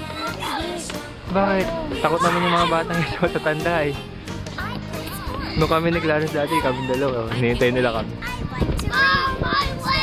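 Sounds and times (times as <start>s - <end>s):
children calling out: 0.0s - 1.0s, 4.6s - 7.2s, 8.3s - 10.0s.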